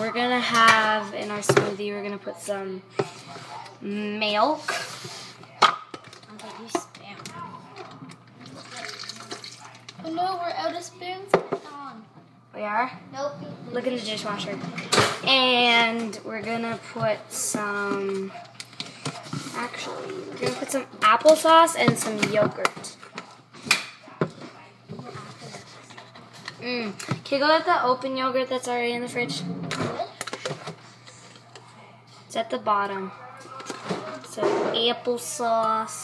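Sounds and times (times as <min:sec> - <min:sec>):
low clatter of kitchen things: 0:02.9 - 0:12.3, 0:13.3 - 0:27.8, 0:29.1 - 0:35.0.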